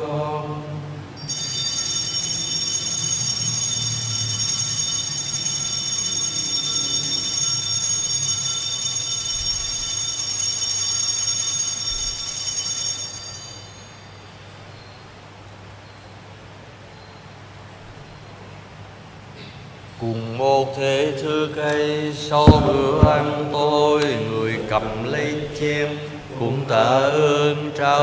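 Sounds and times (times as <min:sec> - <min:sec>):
altar bells ringing: 0:01.2 - 0:16.1.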